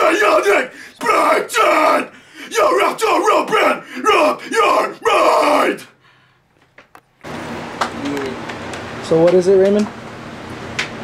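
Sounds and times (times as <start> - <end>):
harsh growled vocals shouting: 0.0 - 6.0
low room noise: 0.0 - 11.0.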